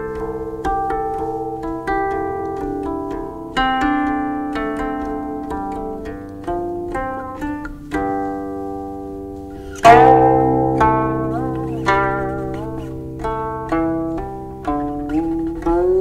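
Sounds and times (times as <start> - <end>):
zither plucked notes: 0.0 - 16.0.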